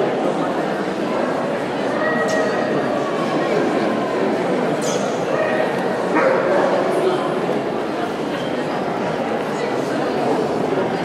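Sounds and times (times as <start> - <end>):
people talking: 0.0 - 11.0
dog barking: 6.1 - 6.6.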